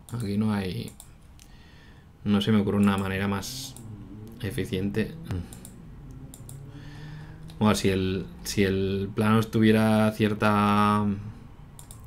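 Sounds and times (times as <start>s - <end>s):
computer mouse clicks: 0.0s - 1.5s, 2.8s - 3.1s, 5.5s - 6.6s, 11.8s - 12.0s.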